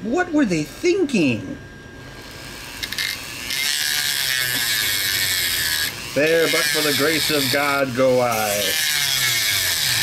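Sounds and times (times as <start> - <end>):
rotary tool grinding plastic: 2.2 - 10.0.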